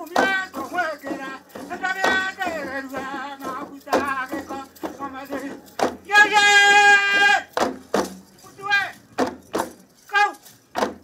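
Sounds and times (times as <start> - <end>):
hand drum beats: 0.0 - 8.3, 9.2 - 9.8, 10.7 - 11.0
loud held cry: 6.0 - 7.6.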